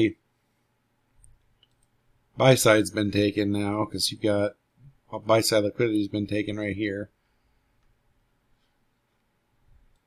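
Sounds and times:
computer mouse clicks: 1.2 - 2.0
person speaking: 2.3 - 7.2.

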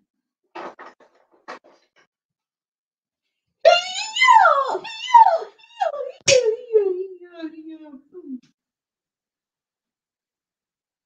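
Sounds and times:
falling wail-like voice: 3.7 - 7.0.

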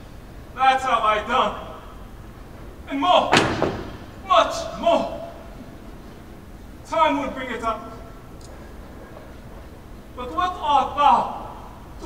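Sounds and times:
man's voice: 0.6 - 1.9, 2.8 - 3.6, 4.2 - 5.6, 6.8 - 8.2, 10.2 - 12.0
loud thud on stage: 3.3 - 4.1.

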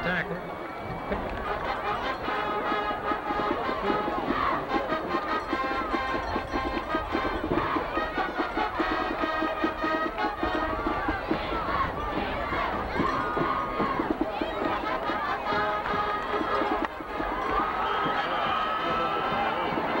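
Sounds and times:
band music with horns: 0.0 - 20.0
stadium crowd noise: 0.0 - 20.0
steady drum beat: 3.0 - 20.0.

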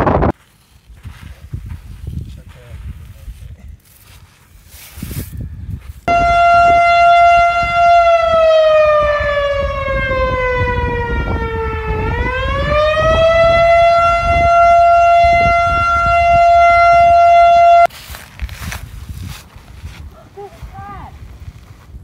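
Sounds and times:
loud siren-like tone: 6.1 - 17.9.

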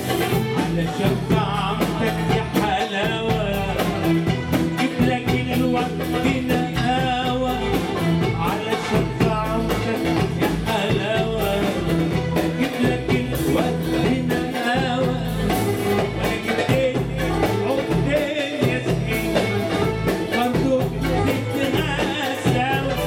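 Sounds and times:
percussion rhythm: 0.0 - 23.0
man singing ornamented melody: 0.2 - 23.0.

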